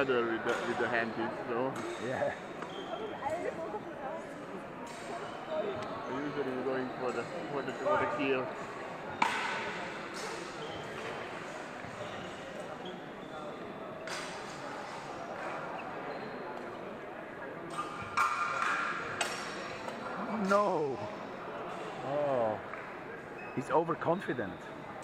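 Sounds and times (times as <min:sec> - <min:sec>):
spectators chattering in a hall: 0:00.0 - 0:25.0.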